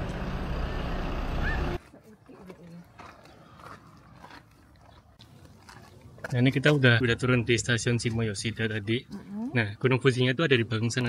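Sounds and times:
low outdoor rumble: 0:00.0 - 0:03.6.

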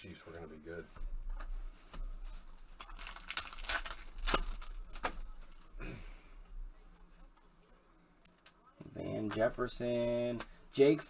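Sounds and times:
foil wrappers crinkling and tearing: 0:02.6 - 0:05.7.

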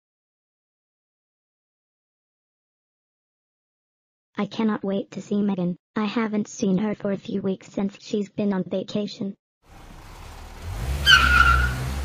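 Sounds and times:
car engine rumble: 0:09.7 - 0:12.0
tyres screeching: 0:10.6 - 0:12.0.

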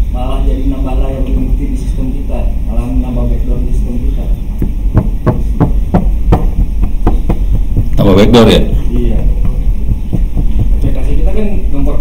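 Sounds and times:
steady low hum: 0:00.0 - 0:12.0
dull knocks: 0:04.6 - 0:08.0.

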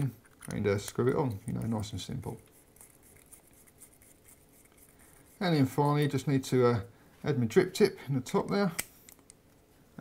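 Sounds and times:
fingers rubbing and ticking metal: 0:00.0 - 0:06.3.

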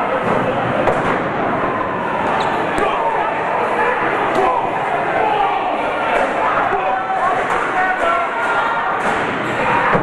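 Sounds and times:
crowd shouting and chattering: 0:00.0 - 0:10.0.

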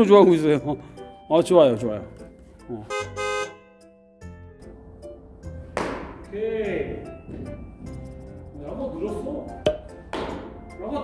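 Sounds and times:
faint background music: 0:00.0 - 0:03.6, 0:04.2 - 0:11.0
horn-like chord sound effect: 0:02.8 - 0:04.2.

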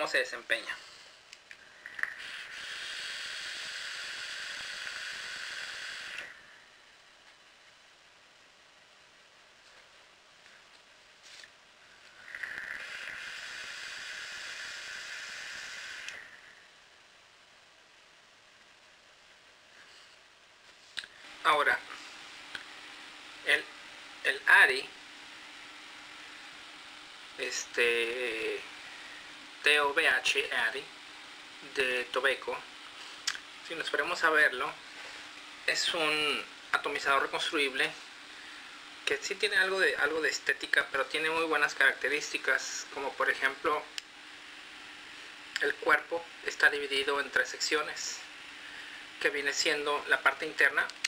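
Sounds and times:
hiss of air and vapour: 0:00.0 - 0:08.1, 0:10.4 - 0:17.7, 0:18.6 - 0:51.0
faint even hum: 0:00.0 - 0:51.0.

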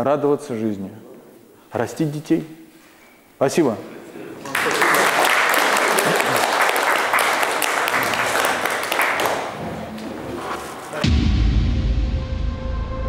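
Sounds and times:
audience clapping: 0:04.4 - 0:11.0.

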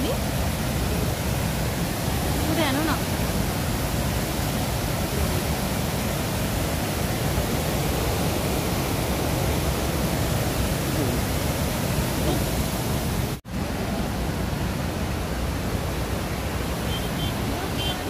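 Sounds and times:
rushing flood water: 0:00.0 - 0:18.0.

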